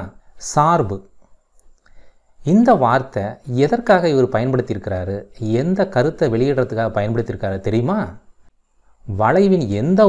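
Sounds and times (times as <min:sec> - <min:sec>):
narrator speaking: 0:02.4 - 0:08.2, 0:09.0 - 0:10.0.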